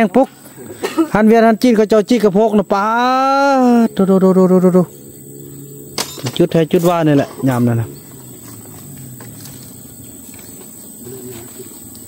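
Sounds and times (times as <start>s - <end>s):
faint steady hum: 0.0s - 12.0s
man speaking: 1.2s - 5.0s, 6.2s - 8.0s.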